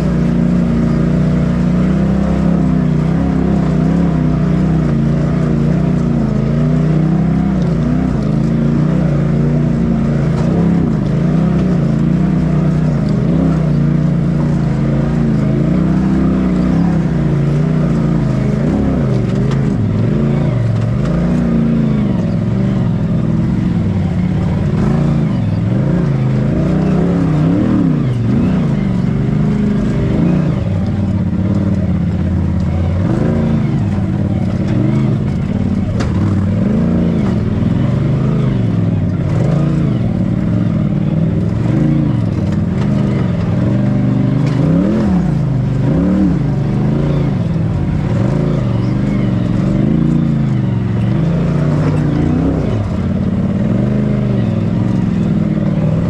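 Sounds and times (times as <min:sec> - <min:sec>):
vehicle engine with throttle blips: 0:00.0 - 0:56.0.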